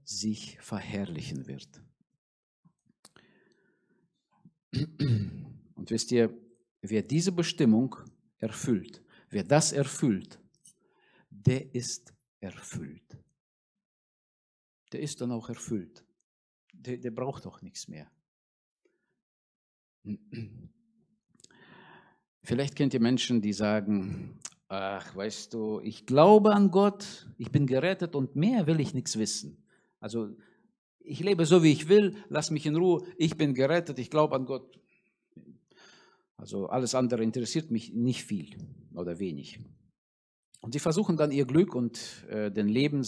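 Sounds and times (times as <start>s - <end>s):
soft breath drawn in: 21.5s - 22.2s.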